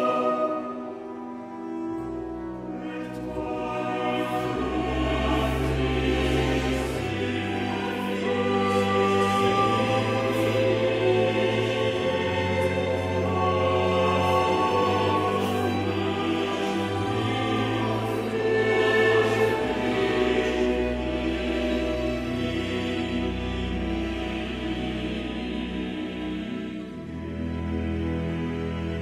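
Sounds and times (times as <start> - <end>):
choir and orchestra performing: 0.0 - 29.0.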